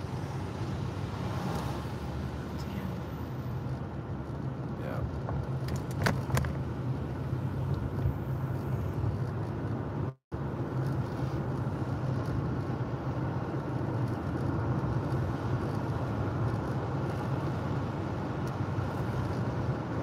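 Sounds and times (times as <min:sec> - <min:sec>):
car driving on paved road: 0:00.0 - 0:20.0.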